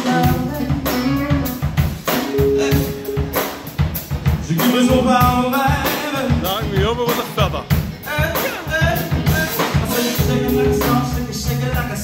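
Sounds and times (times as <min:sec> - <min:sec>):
man singing lead: 0:00.0 - 0:03.5, 0:04.4 - 0:12.0
electric guitar: 0:00.0 - 0:06.4
bass guitar: 0:00.0 - 0:12.0
drum kit beat: 0:00.0 - 0:12.0
keyboard: 0:00.0 - 0:12.0.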